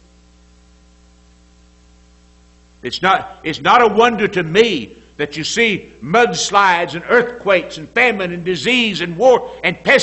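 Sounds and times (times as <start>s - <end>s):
electrical mains hum: 0.0s - 10.0s
man speaking: 2.8s - 10.0s.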